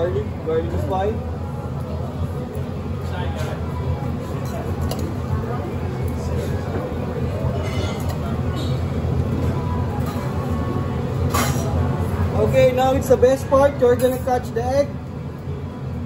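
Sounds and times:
background chatter: 0.0 - 16.0.

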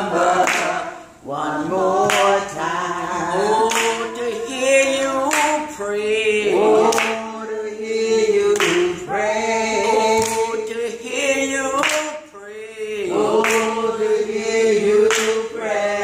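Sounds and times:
woman singing gospel song: 0.0 - 16.0.

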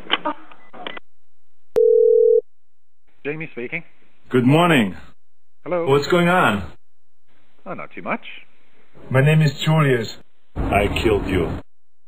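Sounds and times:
telephone line tone: 1.8 - 2.4.

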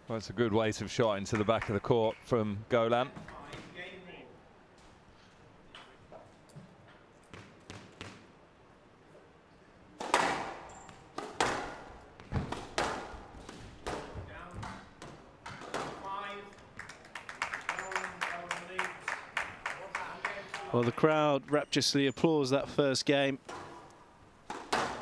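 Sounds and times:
racket striking ball: 10.0 - 10.6, 11.2 - 16.0, 24.5 - 25.0
squash ball bouncing: 10.0 - 16.0, 24.5 - 25.0
crowd applause: 16.8 - 21.1.

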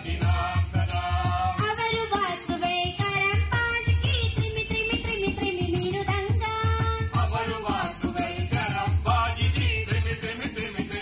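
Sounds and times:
percussion beats with jingling: 0.0 - 11.0
child singing devotional song: 0.1 - 8.5.

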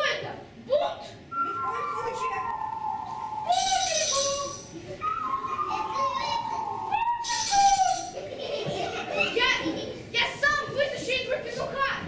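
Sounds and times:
person speaking lines: 1.3 - 8.1.

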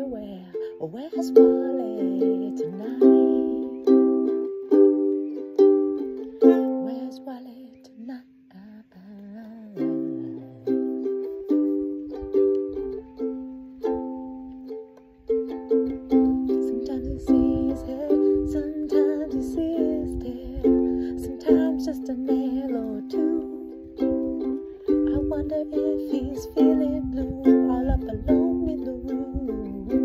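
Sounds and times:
ukulele strumming chords: 0.0 - 8.3, 9.5 - 30.0.

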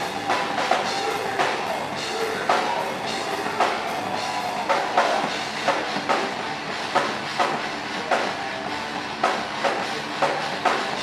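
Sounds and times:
fast drum kit playing: 0.0 - 11.0.

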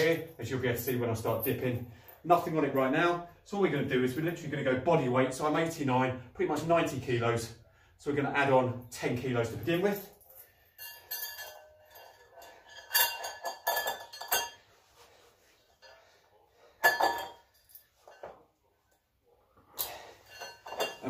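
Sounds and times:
metal chain clinking: 0.0 - 3.2, 8.8 - 18.6, 19.6 - 21.0.

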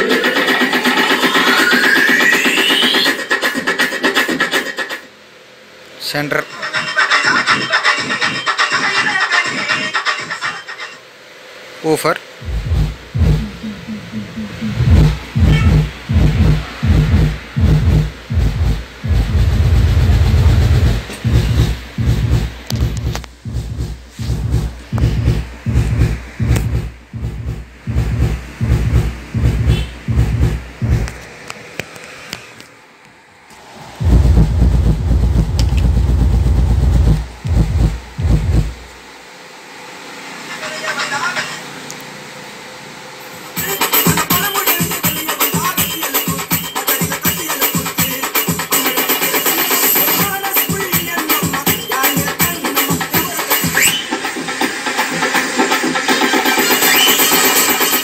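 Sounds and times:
subwoofer playing deep bass beats: 12.4 - 31.2, 34.0 - 39.0.

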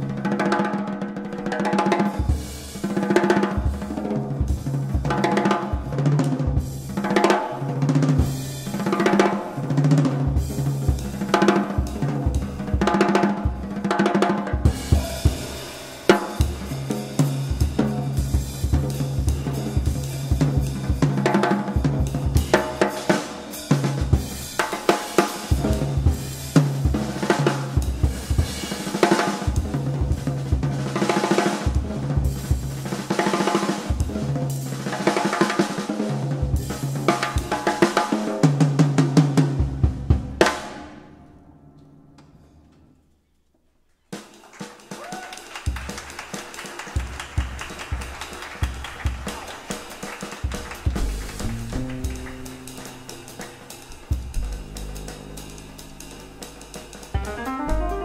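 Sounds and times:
jazz drum solo: 0.0 - 41.1, 44.1 - 58.0.

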